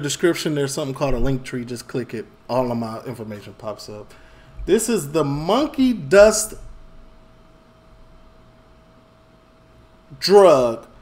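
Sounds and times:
low hum: 1.0s - 11.0s.

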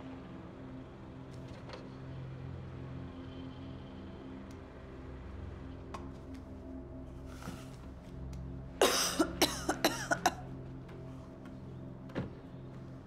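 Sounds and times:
low music drone: 0.0s - 13.0s
person coughing: 8.8s - 10.4s.

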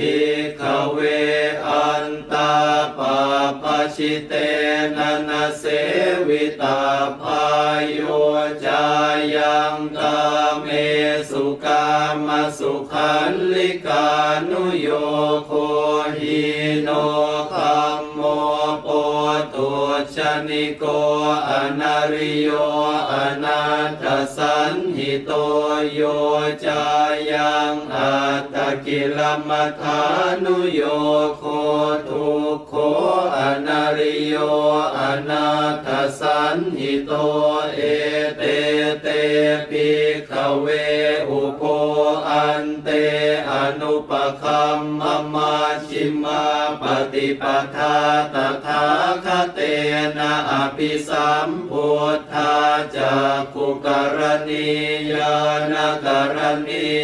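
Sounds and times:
monks chanting in unison: 0.0s - 57.0s.

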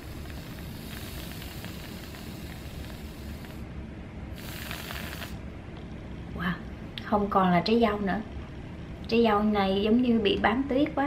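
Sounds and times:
aerosol whipped cream spraying: 0.0s - 3.6s, 4.4s - 5.4s.

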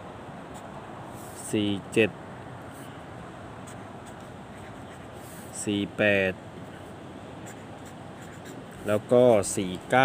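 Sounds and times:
steady background hiss: 0.0s - 10.0s
marker pen scratching on paper: 3.6s - 5.6s, 6.6s - 9.5s.

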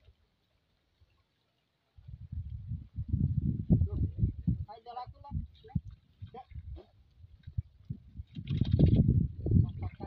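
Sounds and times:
water sloshing and splashing: 5.2s - 10.0s.

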